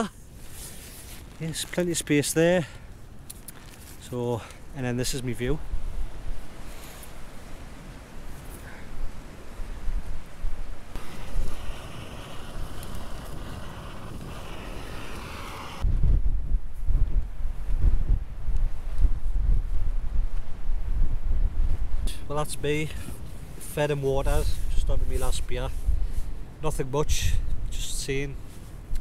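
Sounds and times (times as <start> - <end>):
wind buffeting microphone: 9.0 - 27.8.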